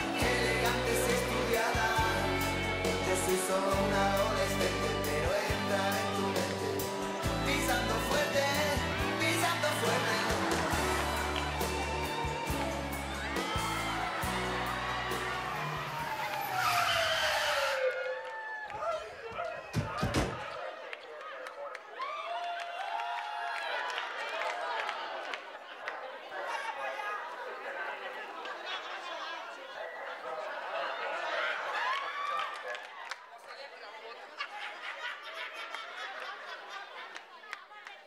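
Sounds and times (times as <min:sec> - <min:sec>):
backing music: 0:00.0 - 0:17.8
audience noise: 0:00.0 - 0:38.0
descending whistle-like comedy tone: 0:15.6 - 0:18.3.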